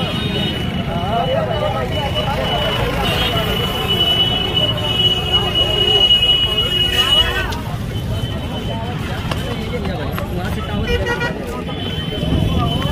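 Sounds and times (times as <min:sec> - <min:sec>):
crowd voices: 0:00.0 - 0:12.9
road traffic: 0:00.0 - 0:12.9.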